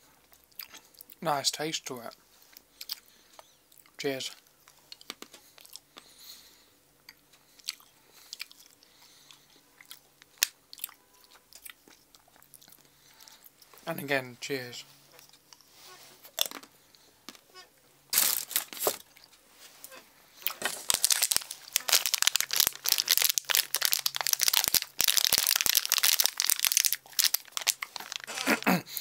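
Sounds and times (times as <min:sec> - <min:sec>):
packaging crinkling and tearing: 0:18.1 - 0:19.0, 0:20.4 - 0:28.8.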